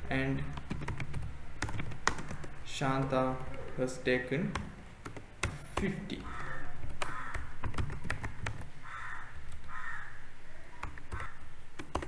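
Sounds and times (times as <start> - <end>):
keyboard and mouse clicks: 0.5 - 3.8, 4.5 - 8.8, 10.8 - 12.0
bird giving harsh calls: 6.2 - 7.6, 8.8 - 11.5.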